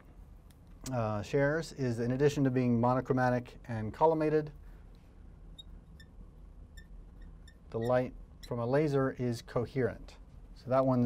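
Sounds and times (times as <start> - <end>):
low room hum: 0.0 - 11.0
marker squeaking on glass: 5.6 - 8.9.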